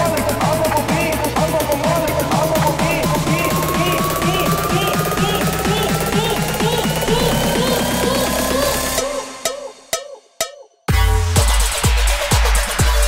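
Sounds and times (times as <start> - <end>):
rising synth tone: 0.0 - 9.5
electronic dance music: 0.0 - 13.0.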